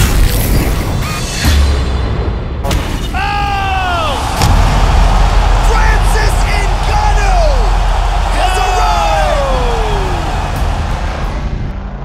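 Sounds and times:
high-pitched yell: 3.2 - 10.6
crowd roar: 3.2 - 11.9
thud: 4.3 - 5.6.

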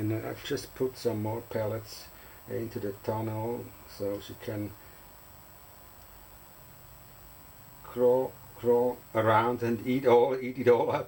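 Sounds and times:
room tone hiss: 0.0 - 11.0.

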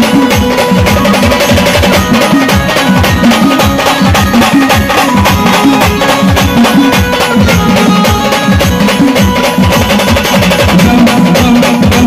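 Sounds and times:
drum-heavy band music over loudspeaker: 0.0 - 12.0.

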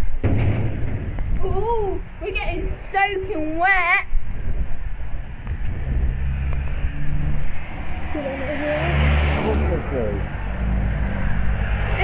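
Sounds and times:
wind rumbling on microphone: 0.0 - 12.0
vehicle engine hum: 4.7 - 12.0.

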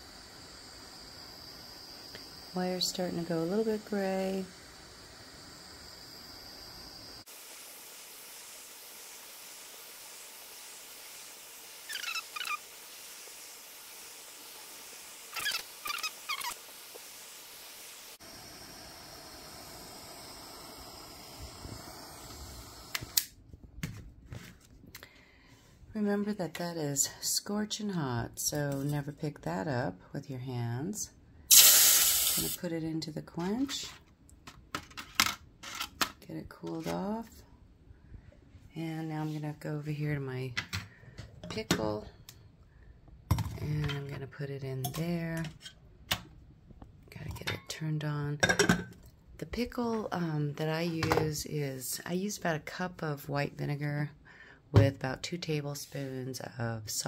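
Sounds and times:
torch flame hissing: 0.0 - 23.3, 31.5 - 32.6
high chirps: 11.9 - 12.6.

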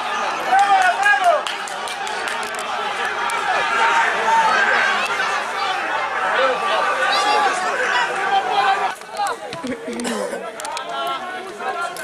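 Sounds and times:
people shouting and cheering: 0.0 - 12.0.

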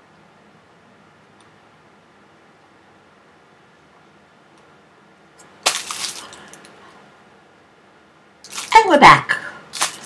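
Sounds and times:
plastic wrapping crinkling: 5.6 - 6.8, 8.4 - 8.9, 9.7 - 10.0.

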